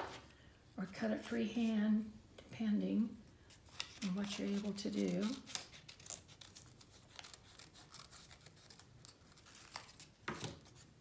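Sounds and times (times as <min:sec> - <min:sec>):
paper rustling: 0:00.0 - 0:00.3
scissors cutting paper: 0:03.7 - 0:10.8.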